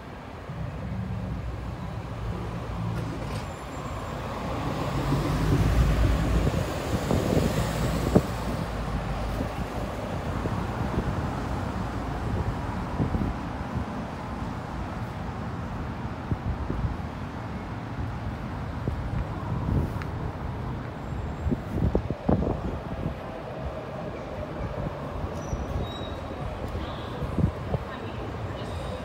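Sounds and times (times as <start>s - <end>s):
cars passing on street: 0.0s - 29.0s.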